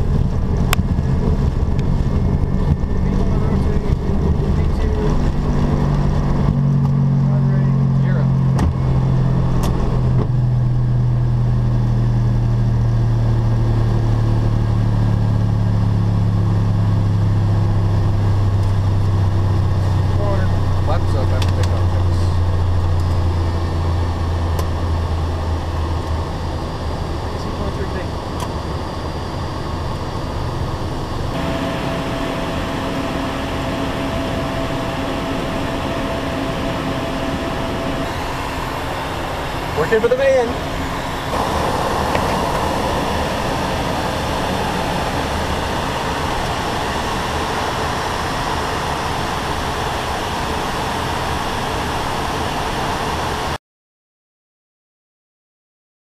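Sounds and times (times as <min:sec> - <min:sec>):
low hum dropping in pitch: 0:00.0 - 0:26.8, 0:31.1 - 0:49.4
jet engines and airflow drone: 0:00.0 - 0:53.6
steady higher tone: 0:31.2 - 0:49.7.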